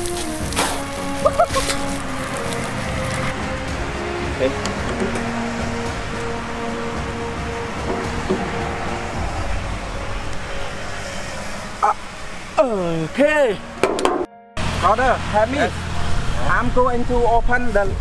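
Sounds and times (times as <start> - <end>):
background music: 0.0 - 16.6.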